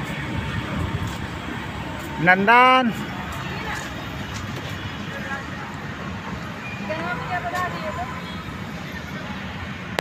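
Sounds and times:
faint voices talking: 0.1 - 10.0.

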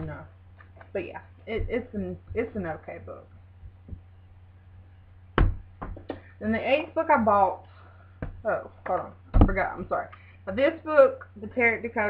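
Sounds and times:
low steady hum: 0.0 - 12.0
book thumping on desk: 5.4 - 6.2.

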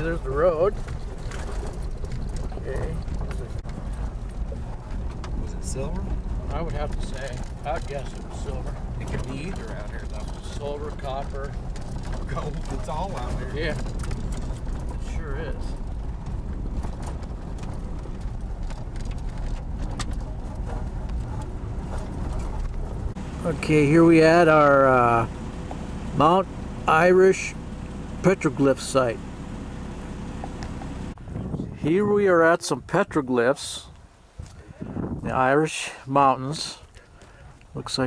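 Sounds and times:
knocks and rattles: 0.0 - 23.6
vehicle rumble on rough road: 0.0 - 38.0.

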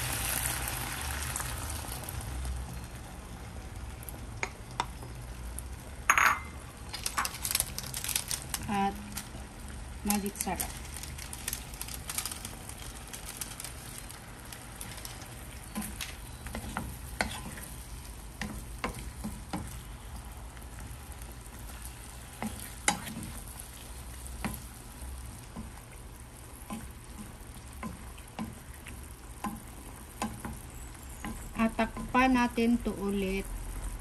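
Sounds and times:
simmering sizzle: 0.0 - 34.0
spoon tapping and scraping pan: 15.7 - 17.7, 18.4 - 19.8, 22.3 - 23.4, 24.4 - 24.7, 26.7 - 30.6, 31.2 - 32.4.

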